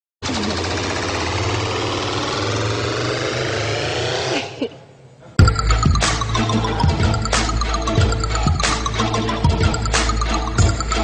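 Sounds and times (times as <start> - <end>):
loud mechanical buzzing rattle: 0.2 - 4.3.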